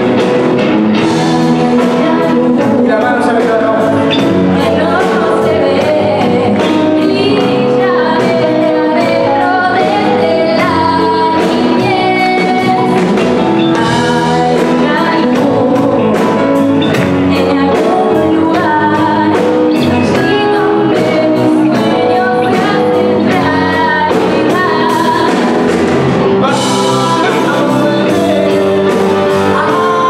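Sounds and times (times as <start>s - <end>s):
live rock band playing: 0.0s - 30.0s
woman singing pop-rock song: 0.0s - 30.0s.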